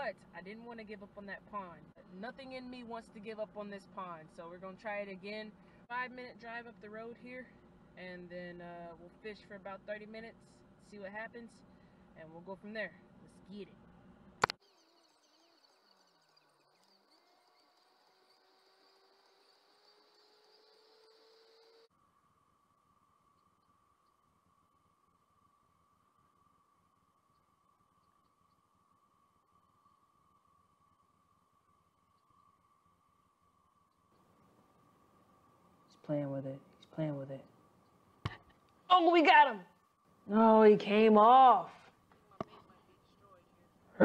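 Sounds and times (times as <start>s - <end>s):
sharp click: 14.4s - 14.6s.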